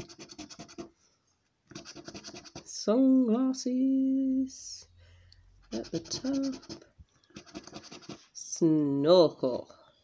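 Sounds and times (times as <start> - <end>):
coin scratching a scratchcard: 0.0 - 0.9, 1.7 - 2.7, 5.6 - 8.2.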